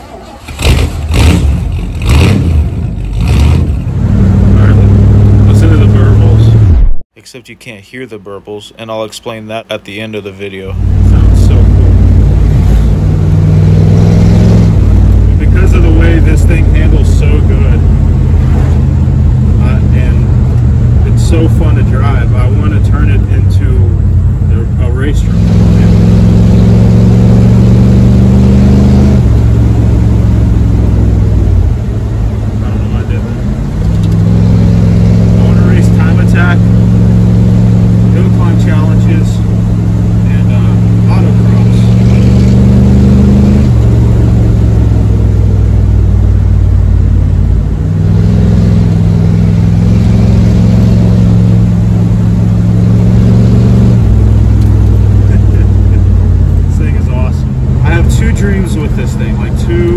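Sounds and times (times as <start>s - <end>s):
truck engine pulling: 0.0s - 6.9s, 8.9s - 59.9s.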